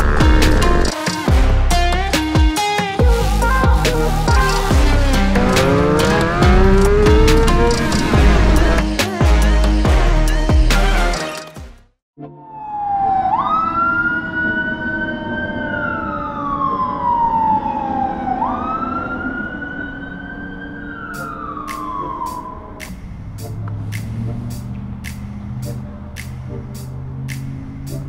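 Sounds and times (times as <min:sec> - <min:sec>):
police siren wailing: 0:03.5 - 0:08.8, 0:12.3 - 0:28.0.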